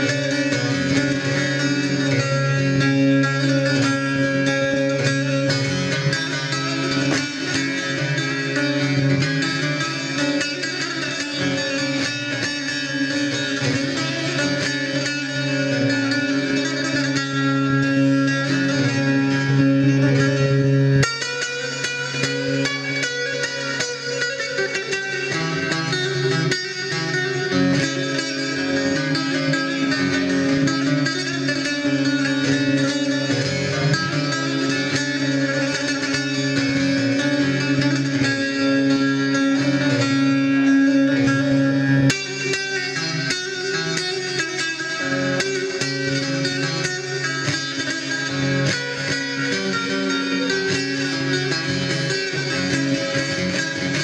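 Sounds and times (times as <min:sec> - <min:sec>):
plucked saz melody: 0:00.0 - 0:54.0.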